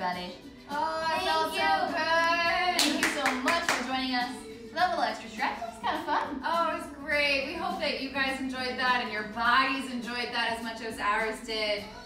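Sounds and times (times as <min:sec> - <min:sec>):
music with singing voice: 0:00.0 - 0:12.0
hand claps: 0:02.7 - 0:04.0.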